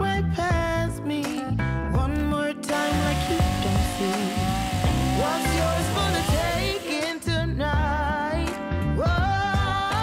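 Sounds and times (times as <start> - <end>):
background song: 0.0 - 10.0
chainsaw cutting: 2.7 - 7.4.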